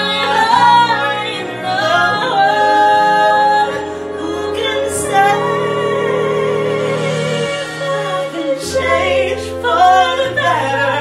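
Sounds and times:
women singing a duet: 0.0 - 11.0.

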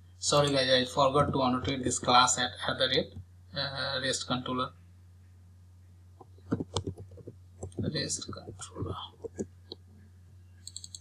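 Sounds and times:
low electrical hum: 0.0 - 11.0
computer keyboard keystrokes: 6.5 - 9.5, 10.6 - 11.0.

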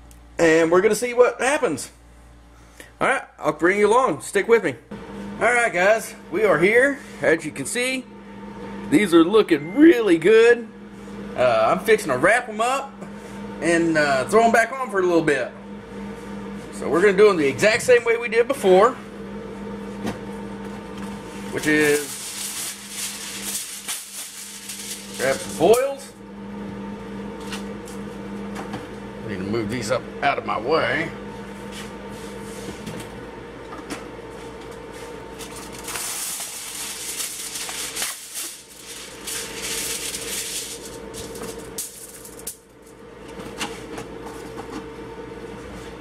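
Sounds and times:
aluminium foil crinkling: 21.6 - 25.6, 35.4 - 42.7.

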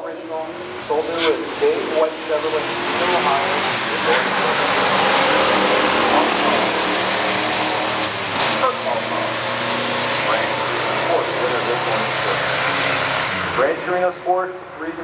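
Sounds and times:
cars engines at full throttle: 0.0 - 15.0.

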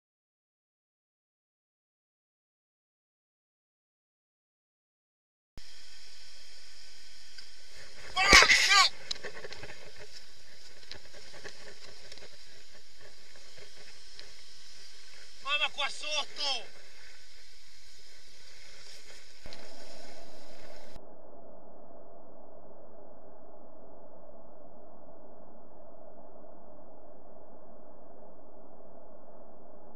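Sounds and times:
outdoor background hiss: 5.6 - 21.0
faint click: 7.3 - 7.5.

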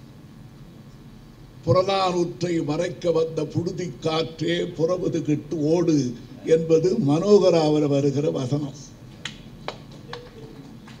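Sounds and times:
man speaking: 1.7 - 8.9.

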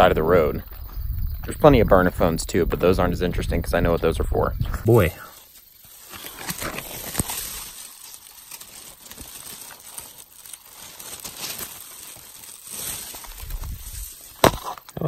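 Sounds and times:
dry grass rustling and crackling: 2.9 - 14.9.

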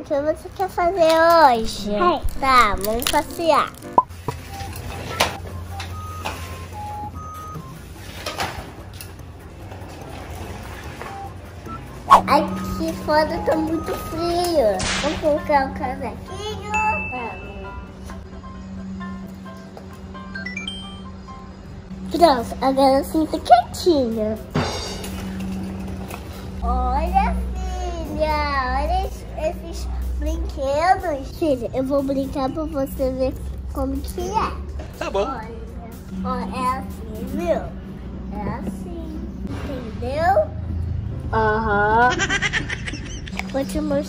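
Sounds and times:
child's voice: 0.0 - 3.8, 12.2 - 17.6, 22.1 - 24.5, 26.6 - 40.6, 43.4 - 44.0.

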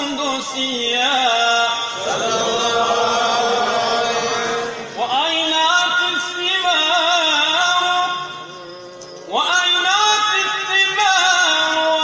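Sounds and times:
man chanting religious verse: 0.0 - 8.7, 9.3 - 12.0.

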